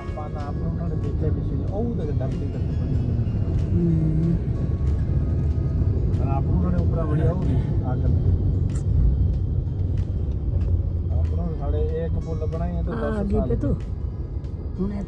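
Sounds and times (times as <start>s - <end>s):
car road rumble inside cabin: 0.0s - 15.0s.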